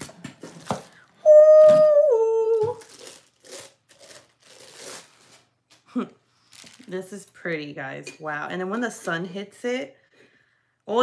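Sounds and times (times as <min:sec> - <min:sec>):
packaging crinkling and rustling: 0:02.6 - 0:05.8, 0:06.4 - 0:07.1.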